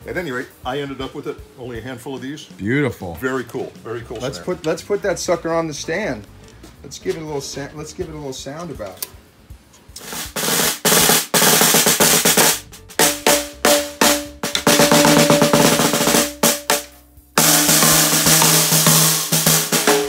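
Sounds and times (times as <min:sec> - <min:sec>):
snare drum rolls and strokes: 0:09.8 - 0:20.0.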